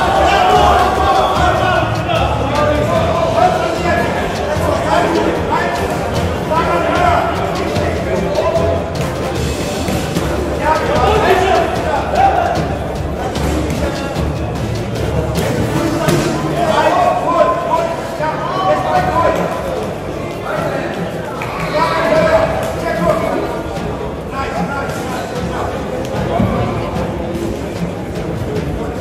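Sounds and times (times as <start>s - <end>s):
music with pulsing bass: 0.0s - 17.1s
voices calling out: 0.0s - 27.8s.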